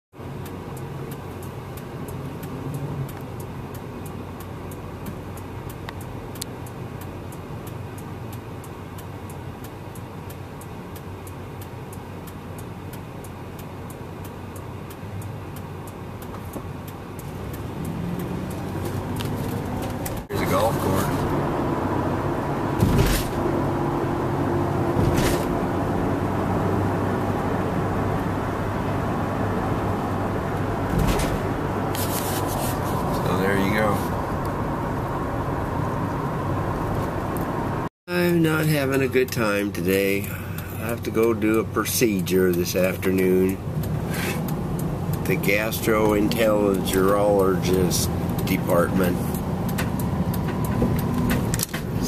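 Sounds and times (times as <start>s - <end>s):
road noise: 0.1s - 52.0s
car engine hum: 0.2s - 52.0s.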